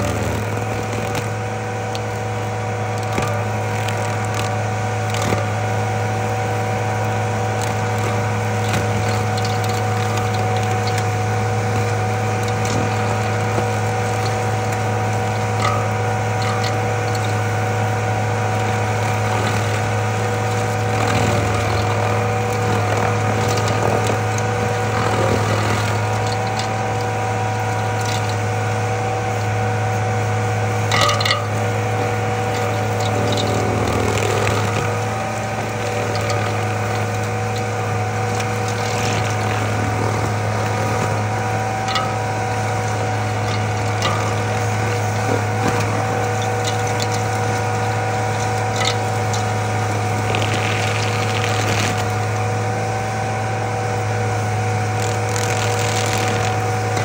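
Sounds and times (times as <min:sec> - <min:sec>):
sharp clatter: 0:00.0 - 0:29.6, 0:30.7 - 0:52.5, 0:54.8 - 0:57.0
stump grinder grinding: 0:00.0 - 0:57.0.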